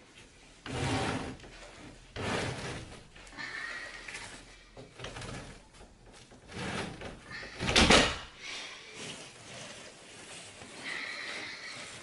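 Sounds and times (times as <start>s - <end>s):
carpet scraping: 0.1s - 3.4s, 4.1s - 12.0s.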